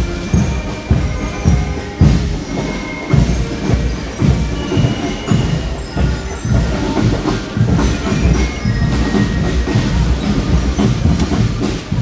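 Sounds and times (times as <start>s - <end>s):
low drum thumps: 0.0s - 12.0s.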